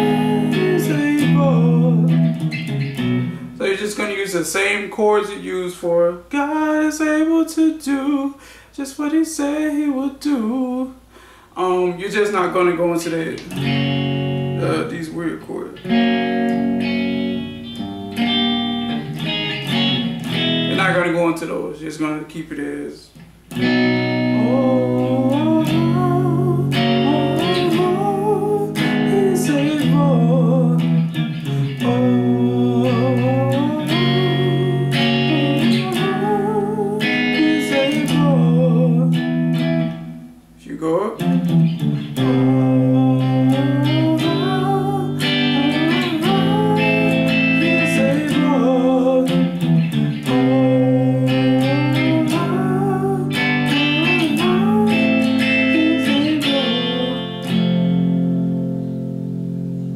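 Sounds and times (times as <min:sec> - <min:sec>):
man singing: 0:00.0 - 0:02.4, 0:03.6 - 0:13.5, 0:14.6 - 0:15.8, 0:24.2 - 0:39.3, 0:40.6 - 0:41.5, 0:42.1 - 0:57.8
electric guitar chords: 0:00.0 - 0:04.4, 0:13.3 - 0:21.3, 0:23.2 - 0:59.9.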